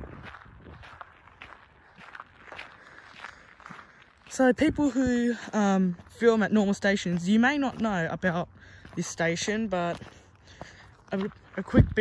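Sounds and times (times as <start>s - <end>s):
faint footsteps walking: 0.0s - 12.0s.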